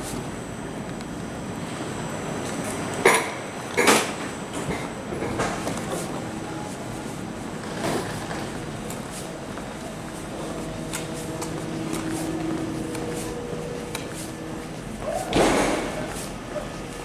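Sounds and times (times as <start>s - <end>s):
train station rumble: 0.0s - 17.0s
faint high whine: 5.8s - 17.0s.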